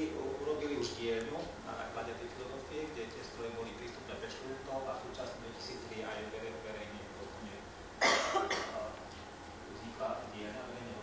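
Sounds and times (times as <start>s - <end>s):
man coughing: 8.0s - 8.9s.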